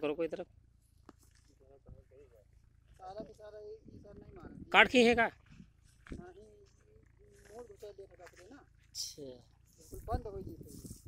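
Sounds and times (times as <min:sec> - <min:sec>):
distant voices talking: 0:00.0 - 0:10.7.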